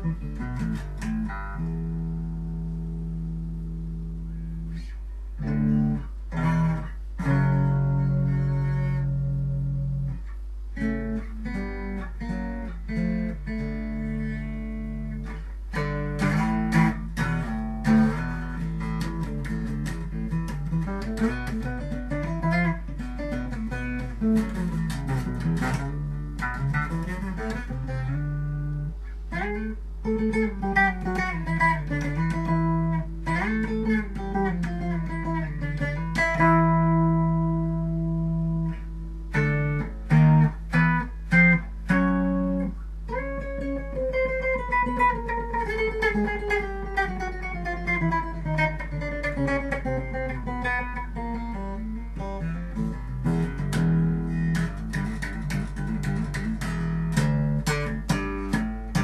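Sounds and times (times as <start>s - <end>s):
bass guitar playing: 0.0s - 59.0s.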